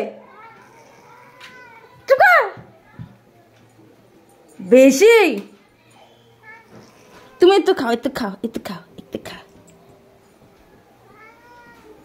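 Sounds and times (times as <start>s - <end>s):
cat meowing softly: 11.0s - 12.0s.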